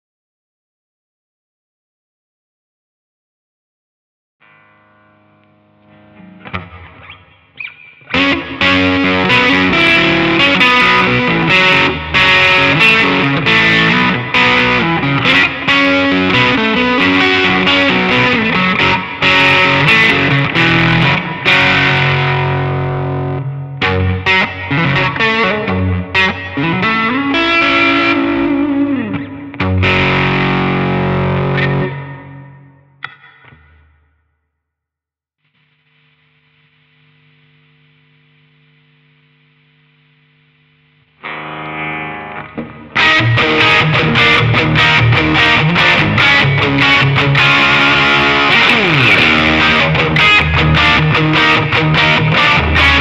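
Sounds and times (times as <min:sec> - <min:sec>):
distorted electric guitar: 0:04.4 - 0:34.1, 0:35.5 - 0:53.0.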